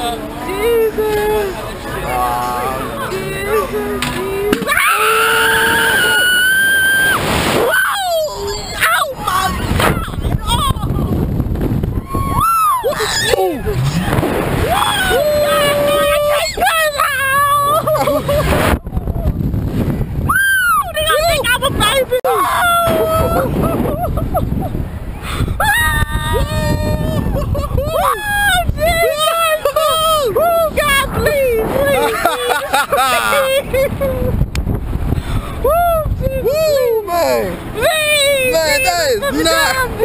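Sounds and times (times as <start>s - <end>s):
people screaming and laughing: 3.4s - 11.2s, 12.0s - 19.4s, 20.2s - 34.4s
wind rushing across microphone: 9.2s - 40.0s
low scream: 12.0s - 18.0s.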